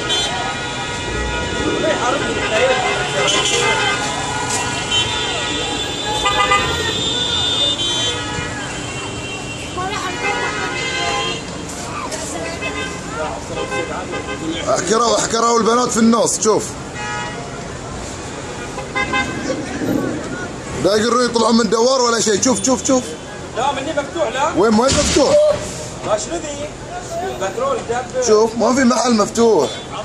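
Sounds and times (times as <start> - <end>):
car horn blast: 0.0 - 11.5
voices calling out: 0.0 - 16.9
traffic noise: 0.0 - 30.0.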